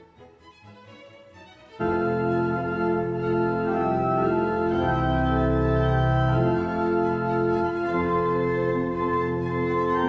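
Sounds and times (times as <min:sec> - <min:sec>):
organ playing sustained chords: 0:01.8 - 0:10.0.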